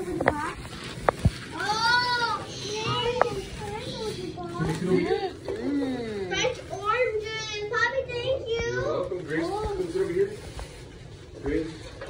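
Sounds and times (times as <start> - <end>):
young children chattering: 0.0 - 0.7, 1.3 - 9.7.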